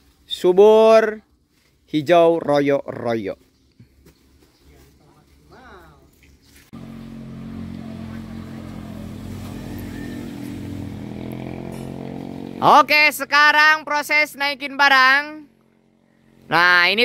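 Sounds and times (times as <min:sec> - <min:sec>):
engine idling: 0:06.8 - 0:10.5.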